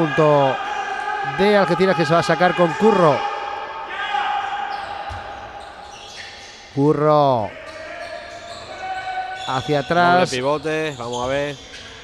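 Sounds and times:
person calling out: 10.0 - 10.4.

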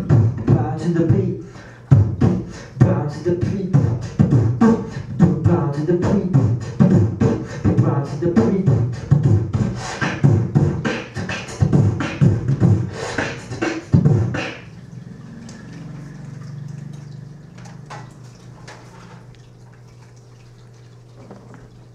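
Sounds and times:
beatboxing into a microphone: 0.0 - 14.8
low steady hum: 13.9 - 21.9.

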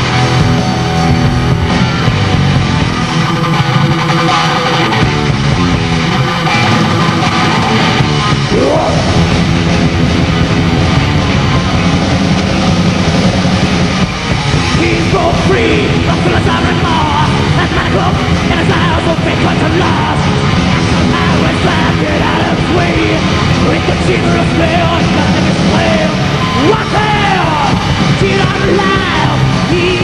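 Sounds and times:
heavy metal band playing live: 0.0 - 30.0.

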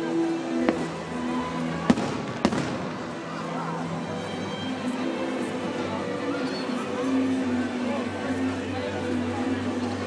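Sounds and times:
firework bang with echo: 1.8 - 3.2.

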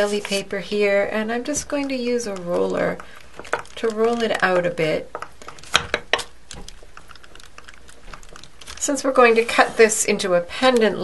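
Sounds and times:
roller clicking and tapping on clay: 0.0 - 11.0.

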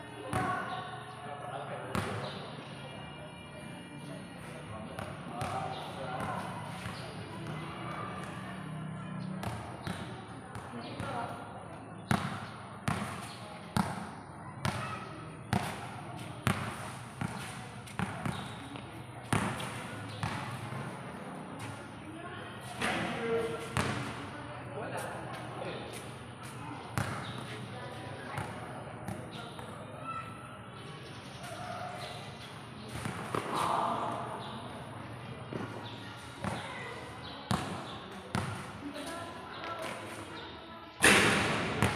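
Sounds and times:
faint voices: 0.0 - 41.9
basketball bouncing on concrete: 12.1 - 20.9, 23.7 - 24.2, 27.0 - 27.5, 32.9 - 33.6, 37.5 - 38.7.

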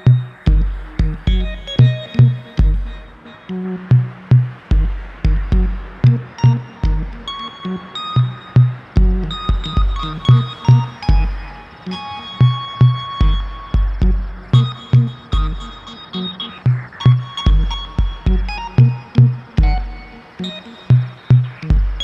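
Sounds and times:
electronic music with steady beat: 0.0 - 22.0.

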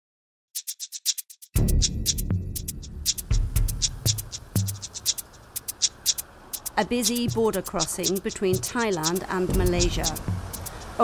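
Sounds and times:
electronic music: 0.6 - 11.0
hi-hat ticking: 0.6 - 11.0
kick drum thumps: 9.5 - 10.5.

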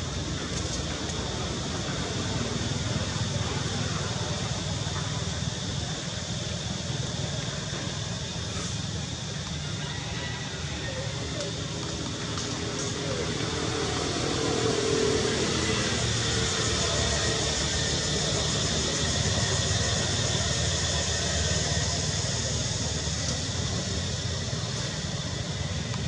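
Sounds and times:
rushing hiss: 0.0 - 26.0.

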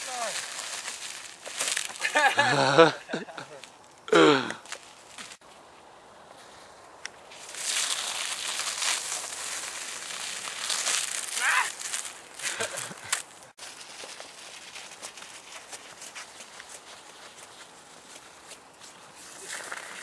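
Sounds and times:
crunching on icy slush: 0.0 - 2.7, 7.3 - 20.0.

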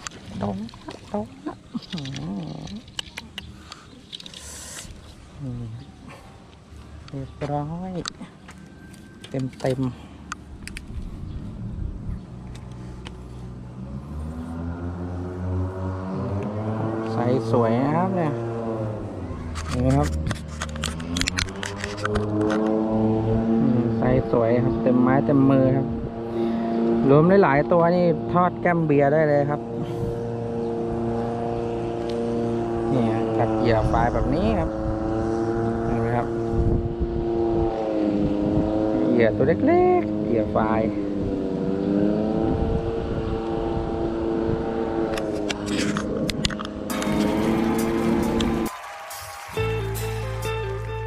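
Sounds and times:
engine running steadily: 0.0 - 48.7.

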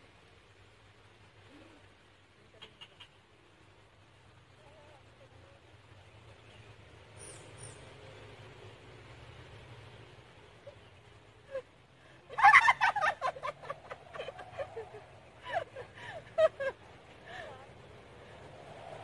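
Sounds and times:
women squealing and laughing: 11.4 - 17.6.

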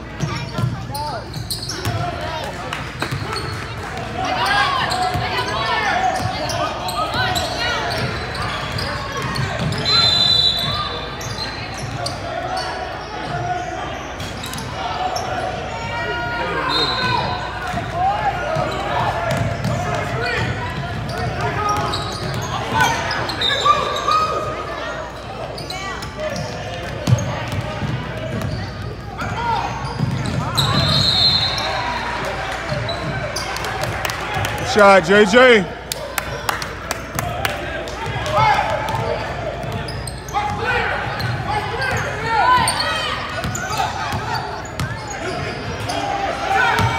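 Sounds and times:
murmur of spectators: 0.0 - 46.9.

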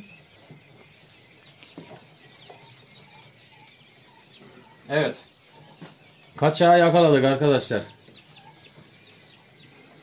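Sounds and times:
quail chicks cheeping: 0.0 - 10.0.

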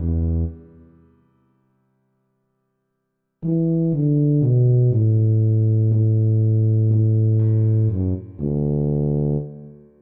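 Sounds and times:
tuba low notes: 0.0 - 1.0, 3.4 - 10.0.

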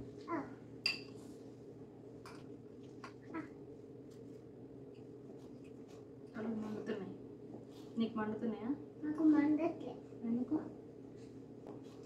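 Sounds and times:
room hum: 0.0 - 12.0
utensils clinking on a bowl: 0.8 - 1.2.

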